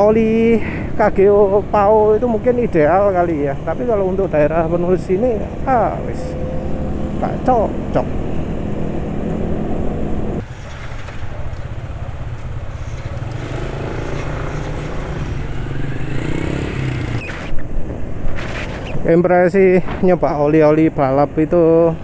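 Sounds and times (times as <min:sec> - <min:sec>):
road noise: 0:00.0 - 0:22.0
wind: 0:00.0 - 0:22.0
motorcycle engine accelerating: 0:05.3 - 0:17.6
sharp clatter: 0:10.4 - 0:15.8.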